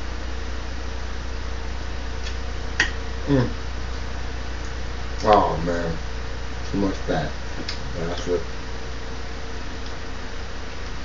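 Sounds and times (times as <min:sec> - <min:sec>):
steady low hum: 0:00.0 - 0:11.0
man humming while eating: 0:03.2 - 0:03.6.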